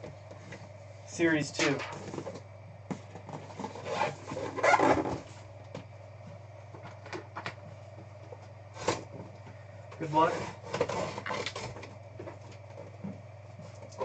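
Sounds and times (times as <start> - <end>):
cardboard box scraping: 3.4 - 5.4.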